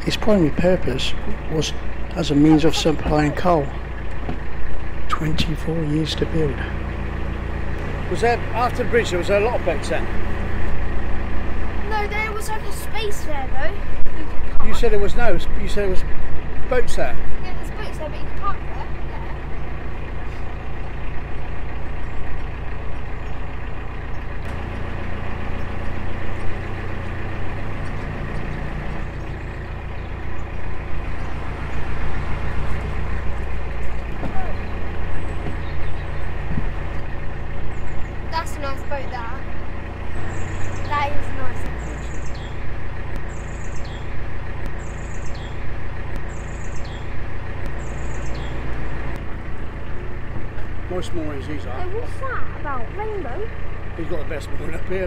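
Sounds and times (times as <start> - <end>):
boat diesel engine droning: 0.0 - 55.0.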